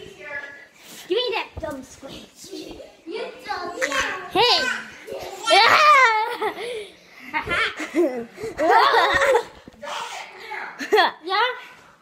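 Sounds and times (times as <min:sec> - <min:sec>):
children laughing and exclaiming: 0:02.2 - 0:11.6.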